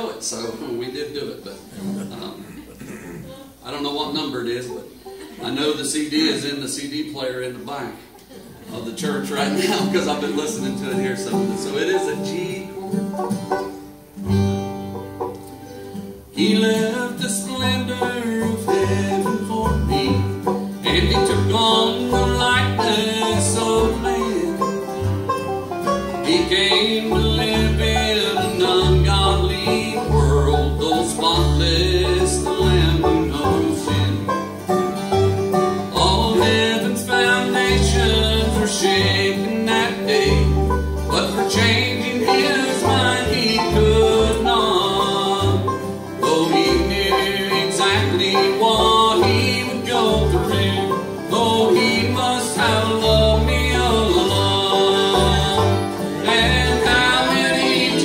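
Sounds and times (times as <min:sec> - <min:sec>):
plucked upright bass: 0:00.0 - 0:06.9, 0:07.6 - 0:58.0
mandolin: 0:00.0 - 0:58.0
strummed acoustic guitars: 0:07.9 - 0:58.0.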